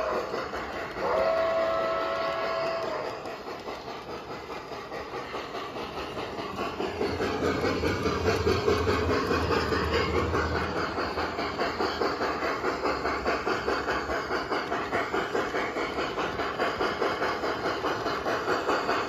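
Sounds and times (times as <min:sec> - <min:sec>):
model train steam whistle: 0:00.0 - 0:03.4
rhythmic steam chuffing: 0:00.0 - 0:19.0
train rolling on track: 0:00.0 - 0:19.0.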